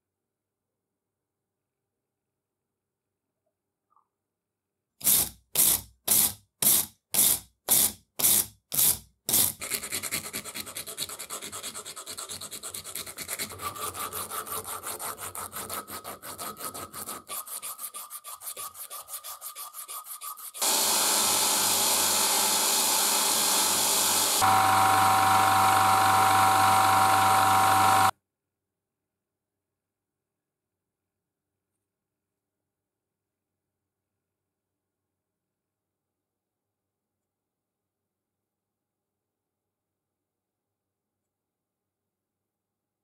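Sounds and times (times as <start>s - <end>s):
abrasive cloth rasping: 7.8s - 24.6s
brush scrubbing metal: 9.6s - 22.2s
machine rushing and whining: 20.6s - 28.1s.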